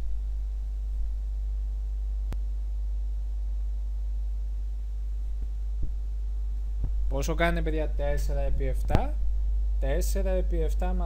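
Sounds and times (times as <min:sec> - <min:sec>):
low electrical hum: 0:00.0 - 0:11.0
sharp click: 0:08.8 - 0:09.1.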